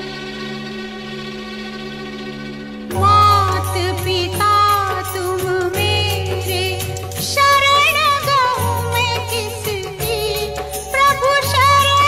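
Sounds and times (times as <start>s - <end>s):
sustained bowed strings chord: 0.0s - 5.3s.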